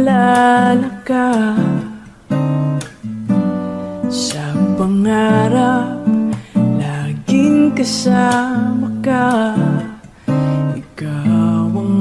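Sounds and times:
person singing: 0.0s - 2.1s, 4.0s - 12.0s
acoustic guitar chords: 0.0s - 12.0s.

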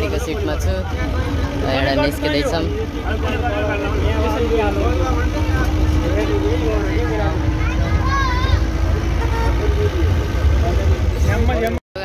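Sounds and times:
bus engine rumble and road noise: 0.0s - 12.0s
people's voices: 0.0s - 12.0s.

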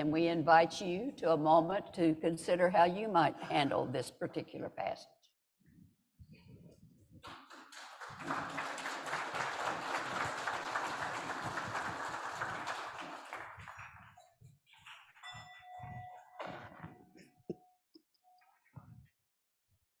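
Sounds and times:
bell-like chime ringing: 15.2s - 18.4s.

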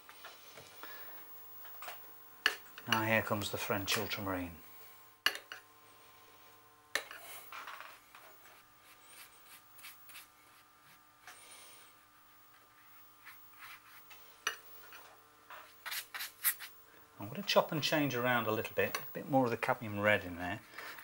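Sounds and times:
brush swishing on paper: 8.8s - 11.0s, 12.8s - 14.1s, 15.6s - 16.7s.

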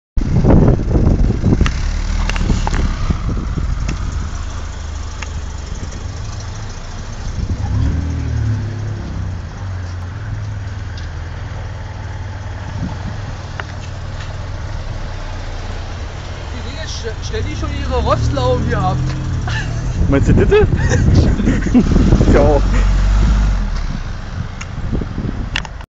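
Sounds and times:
car engine running: 0.2s - 25.7s.

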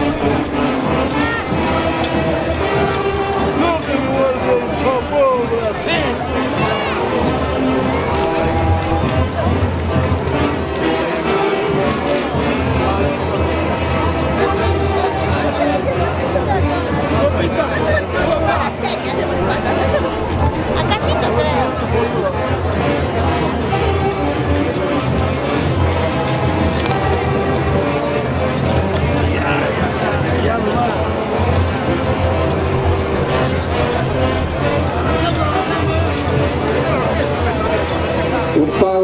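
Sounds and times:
band playing dance music: 0.0s - 39.0s
crowd voices: 0.0s - 39.0s.

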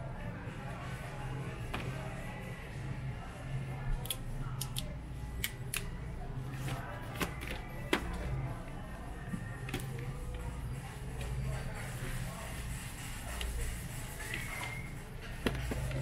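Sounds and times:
store background music: 0.0s - 16.0s.

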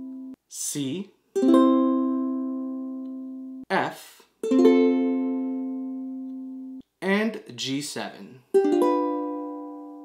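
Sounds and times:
ukulele chord strummed: 0.0s - 0.4s, 1.4s - 3.6s, 4.4s - 6.8s, 8.5s - 10.0s.

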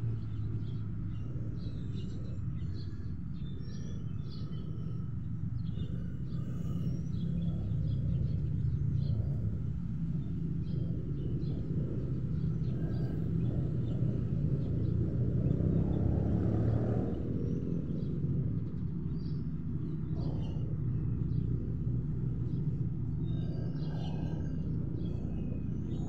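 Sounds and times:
low outdoor rumble: 0.0s - 26.0s.

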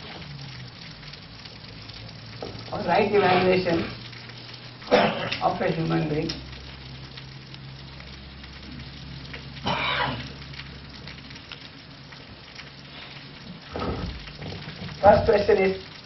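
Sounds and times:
background hiss: 0.0s - 16.0s.

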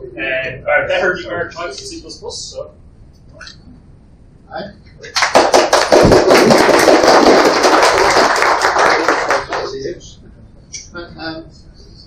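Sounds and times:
audience applauding: 5.0s - 9.8s.

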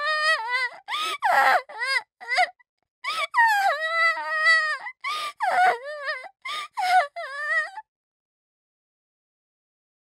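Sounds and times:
girl crying and sobbing: 0.0s - 7.8s.

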